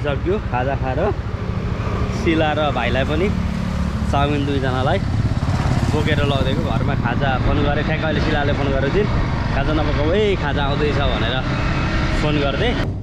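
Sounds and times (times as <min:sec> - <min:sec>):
man talking: 0:00.0 - 0:01.2, 0:02.1 - 0:03.4, 0:04.1 - 0:05.1, 0:05.8 - 0:11.5, 0:12.2 - 0:12.8
motorcycle engine rumble: 0:00.0 - 0:13.0.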